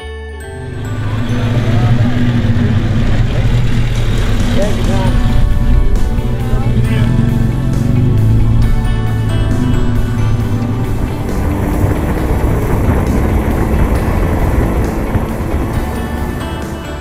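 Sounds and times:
background music: 0:00.0 - 0:17.0
car engine running: 0:00.5 - 0:17.0.

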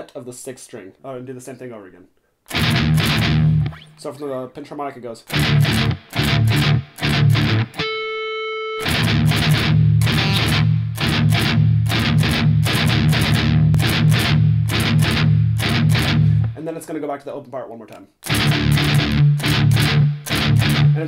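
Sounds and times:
distorted electric guitar riff: 0:02.5 - 0:04.0, 0:05.3 - 0:16.6, 0:18.2 - 0:21.0.

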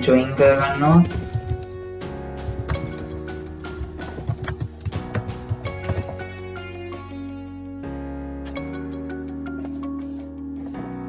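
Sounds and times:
background music with held notes: 0:00.0 - 0:11.0
computer keyboard typing: 0:00.6 - 0:06.2.

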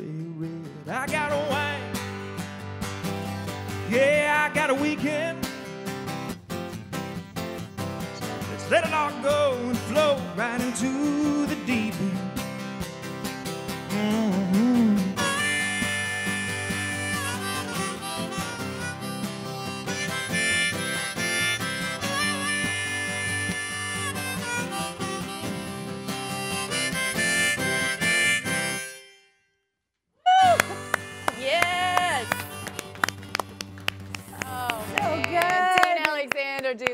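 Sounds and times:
acoustic guitar strumming: 0:00.0 - 0:29.6, 0:30.4 - 0:35.8
harmonica long held notes: 0:14.0 - 0:29.5, 0:30.3 - 0:33.8
short voices: 0:30.3 - 0:33.0.

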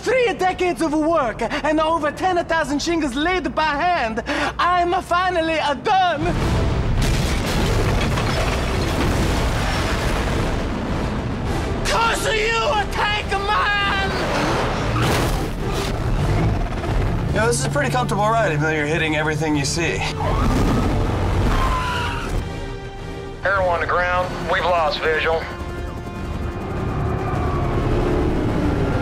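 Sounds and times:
dramatic film score: 0:00.0 - 0:29.0.

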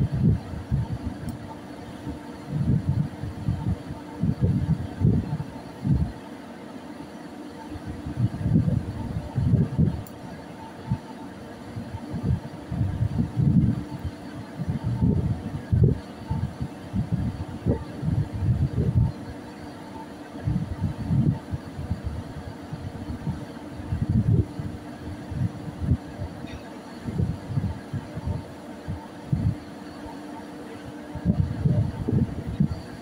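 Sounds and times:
wind buffeting microphone: 0:00.0 - 0:06.2, 0:07.8 - 0:19.5, 0:20.3 - 0:30.1, 0:30.9 - 0:33.0
low hum of ship machinery: 0:00.0 - 0:33.0.

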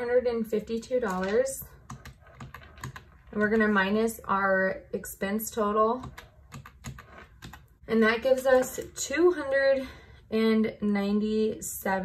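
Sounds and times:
calculator keys clicking: 0:01.0 - 0:03.7, 0:06.0 - 0:07.7.

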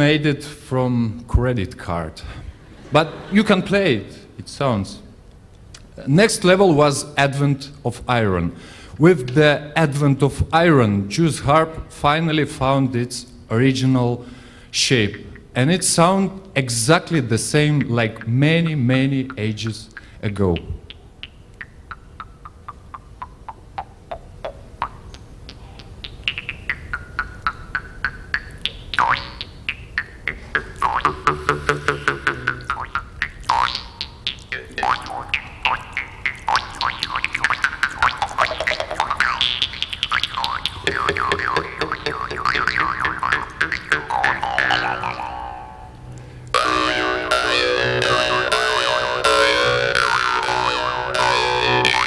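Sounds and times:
jew's harps twanging: 0:14.9 - 0:16.1, 0:16.8 - 0:52.0.

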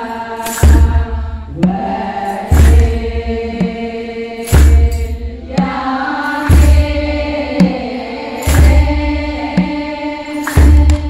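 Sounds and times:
choir chanting a hymn: 0:00.0 - 0:11.0
deep drum thumps: 0:00.6 - 0:07.9, 0:08.5 - 0:09.8
lighter drum strikes: 0:08.4 - 0:09.0.

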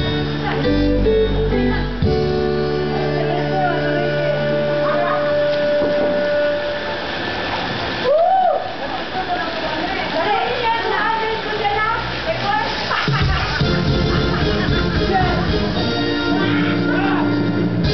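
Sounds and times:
music holding steady notes: 0:00.0 - 0:07.9, 0:13.4 - 0:17.9
voices at a pool: 0:00.3 - 0:13.6
water splashing: 0:03.0 - 0:16.1.

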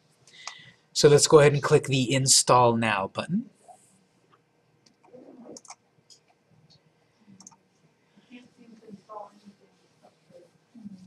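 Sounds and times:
computer mouse clicks: 0:04.8 - 0:06.4, 0:07.4 - 0:07.6.

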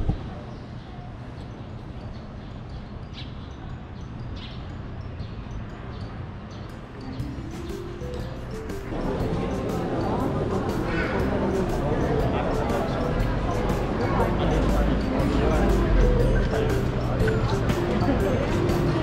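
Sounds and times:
street ambience: 0:00.0 - 0:19.0
background music: 0:01.5 - 0:19.0
people's voices: 0:07.0 - 0:19.0.

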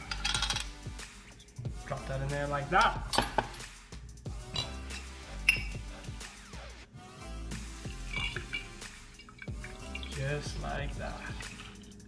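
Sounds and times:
background music: 0:00.0 - 0:12.0
glass and ice clinking: 0:04.5 - 0:05.8, 0:07.9 - 0:10.2, 0:11.1 - 0:12.0
drink pouring: 0:07.8 - 0:12.0.

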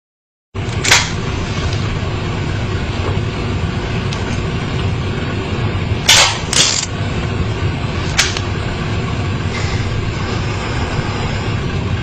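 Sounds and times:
low steady rumble: 0:00.6 - 0:12.0.

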